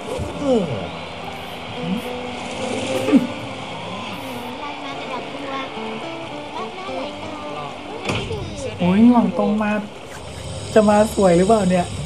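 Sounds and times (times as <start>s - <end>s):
sustained musical tones: 0.0s - 12.0s.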